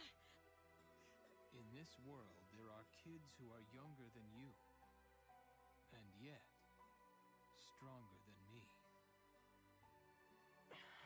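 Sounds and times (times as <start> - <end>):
quiet background music: 0.0 - 11.0
man talking: 1.5 - 4.6, 5.9 - 6.6, 7.6 - 8.8.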